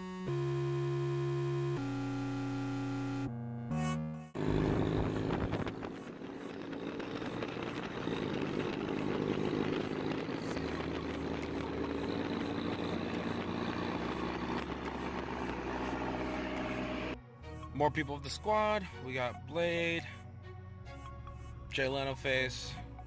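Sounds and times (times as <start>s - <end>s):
music: 0.0s - 23.0s
car engines: 4.4s - 17.2s
tyres on road: 4.4s - 17.2s.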